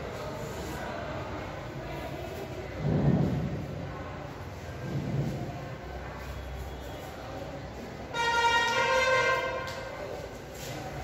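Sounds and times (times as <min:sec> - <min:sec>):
low rumbling background noise: 0:00.0 - 0:11.0.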